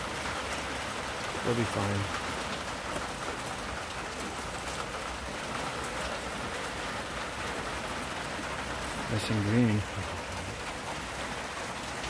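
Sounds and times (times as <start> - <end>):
rain falling steadily: 0.0 - 12.0.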